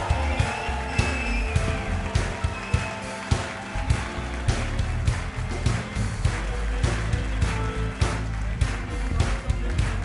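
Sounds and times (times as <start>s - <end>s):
heavy bass line: 0.0s - 2.6s
drums beating: 0.0s - 10.0s
funk band playing: 0.0s - 10.0s.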